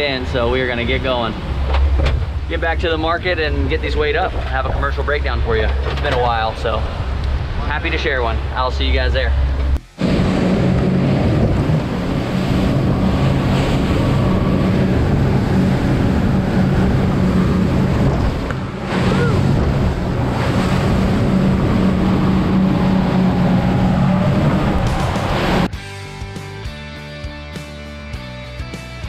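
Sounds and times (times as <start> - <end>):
wind on microphone: 0.0 - 8.6, 9.2 - 25.7
hull pounding through waves: 0.0 - 25.7
outboard motors droning: 0.0 - 25.7.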